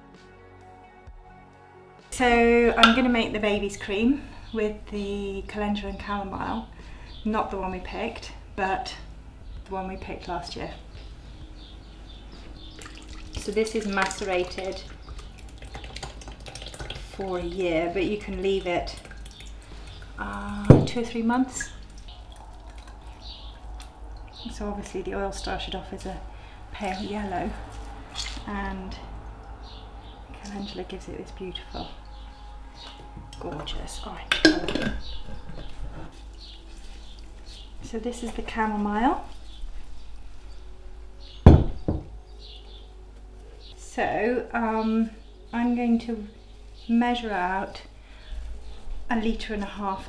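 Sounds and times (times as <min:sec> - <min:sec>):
oil trickling into jug: 0:12.5 - 0:28.5.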